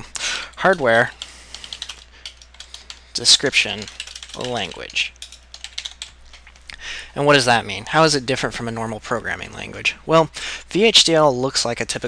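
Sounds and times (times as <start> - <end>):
computer keyboard typing: 0.4 - 6.6.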